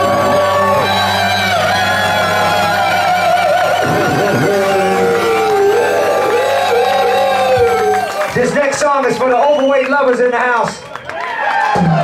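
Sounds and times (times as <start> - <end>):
live band holding final notes: 0.0 - 8.6.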